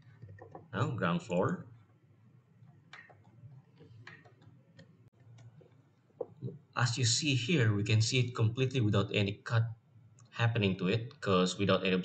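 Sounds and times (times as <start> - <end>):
mouse scroll wheel ticking: 2.7 - 5.7.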